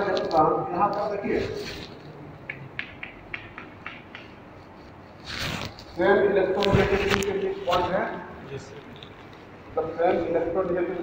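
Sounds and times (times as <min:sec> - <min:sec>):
chalk tapping and scratching on board: 0:02.5 - 0:05.4.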